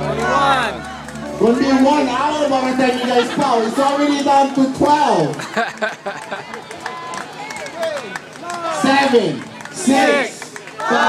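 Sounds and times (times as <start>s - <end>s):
crowd counting aloud: 8.6s - 11.0s.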